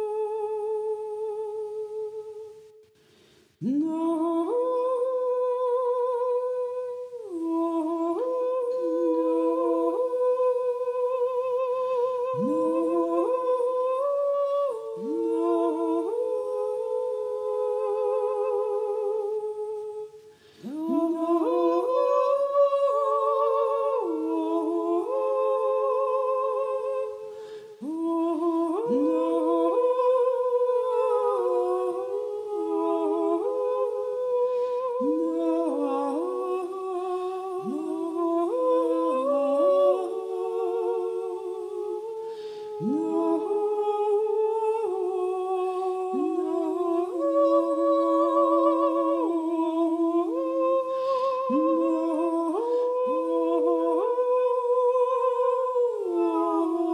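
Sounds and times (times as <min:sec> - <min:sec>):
woman humming in harmony: 0:00.0 - 0:02.7, 0:03.6 - 0:56.9.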